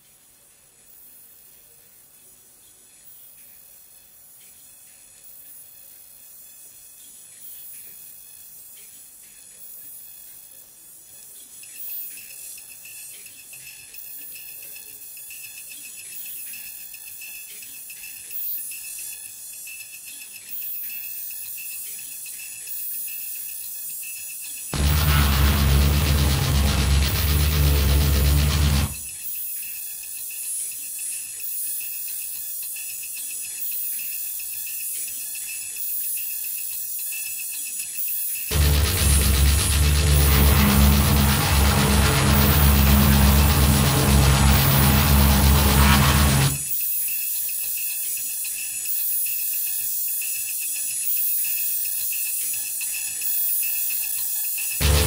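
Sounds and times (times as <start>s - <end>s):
dense burst with heavy bass: 24.8s - 29.0s, 38.5s - 46.7s.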